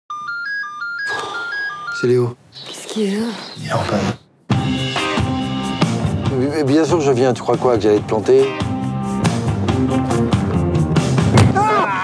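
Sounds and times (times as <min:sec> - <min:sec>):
phone ringtone beeps: 0:00.1 - 0:02.8.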